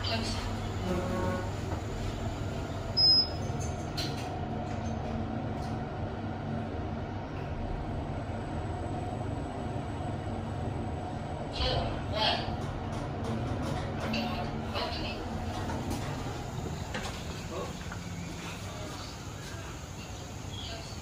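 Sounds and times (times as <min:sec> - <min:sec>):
lift car low hum: 0:00.0 - 0:21.0
short high beep: 0:03.0 - 0:03.4.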